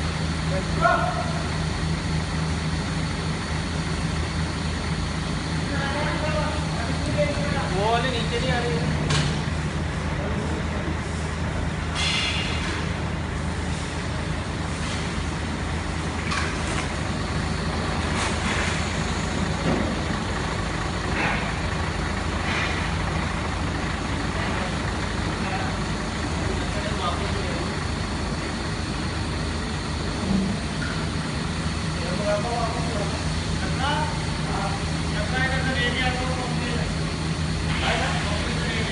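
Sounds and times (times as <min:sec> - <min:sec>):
diesel truck engine idling: 0:00.0 - 0:38.9.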